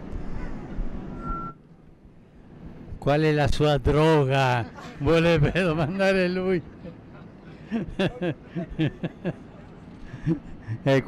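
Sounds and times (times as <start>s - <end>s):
high-pitched beep: 1.2s - 1.6s.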